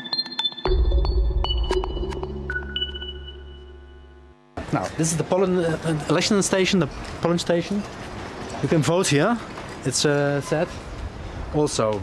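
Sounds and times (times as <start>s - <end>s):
electronic jingle pings: 0.4s - 4.3s
street noise: 4.6s - 12.0s.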